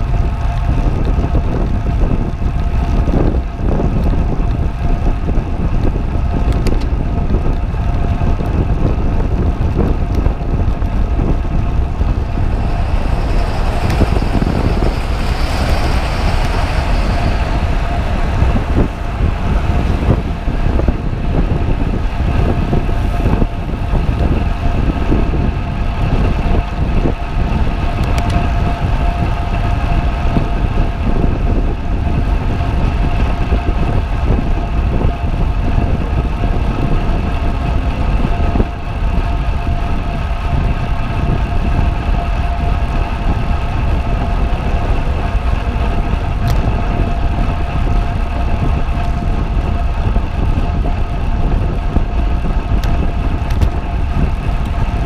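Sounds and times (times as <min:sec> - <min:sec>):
steady whine: 0:00.0 - 0:55.0
wind buffeting microphone: 0:00.0 - 0:55.0.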